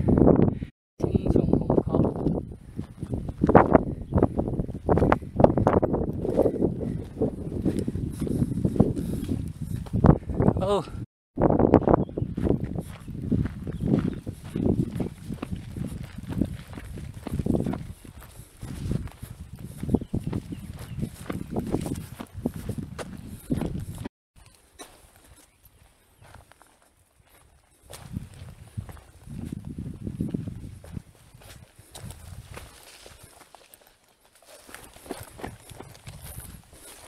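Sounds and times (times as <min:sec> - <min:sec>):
footsteps on sandy gritty trail: 0:02.6 - 0:10.5, 0:11.6 - 0:37.0.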